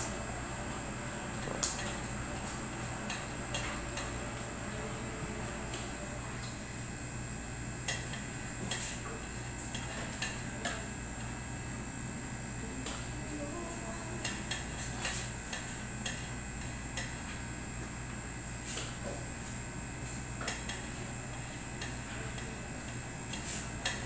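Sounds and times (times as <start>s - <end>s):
air conditioner hum: 0.0s - 24.0s.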